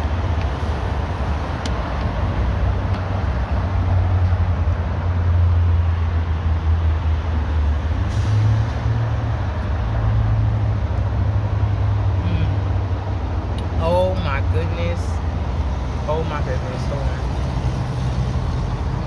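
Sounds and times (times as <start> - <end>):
traffic noise: 0.0 - 19.0.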